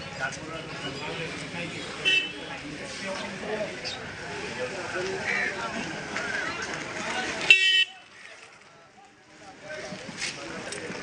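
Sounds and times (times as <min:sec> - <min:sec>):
people's voices: 0:00.0 - 0:11.0
vehicle horn toot: 0:02.0 - 0:02.4, 0:07.5 - 0:08.0.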